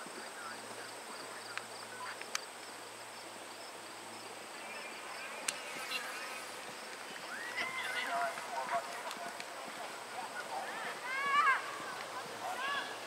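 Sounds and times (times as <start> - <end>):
faint distant voices: 0.0 - 13.0
insects buzzing: 0.0 - 13.0.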